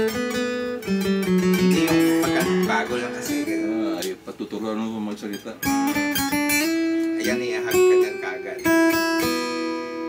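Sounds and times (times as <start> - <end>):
acoustic guitar picking: 0.0 - 10.0.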